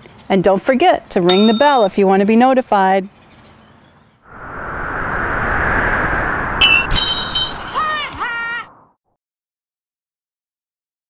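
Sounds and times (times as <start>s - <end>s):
bell-like ding: 1.3s - 2.1s
whoosh sound effect: 4.3s - 7.8s.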